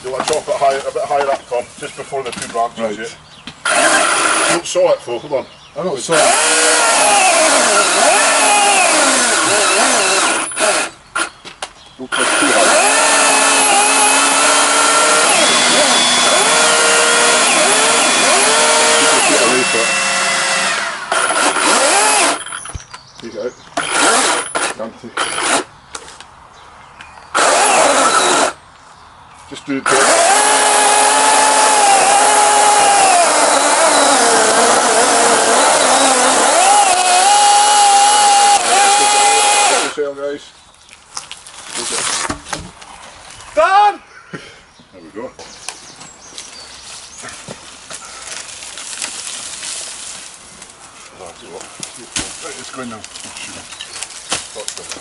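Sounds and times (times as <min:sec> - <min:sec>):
chainsaw cutting branch: 0:03.6 - 0:04.6, 0:06.1 - 0:11.4, 0:12.1 - 0:22.8, 0:23.8 - 0:25.7, 0:27.4 - 0:28.6, 0:29.9 - 0:40.0.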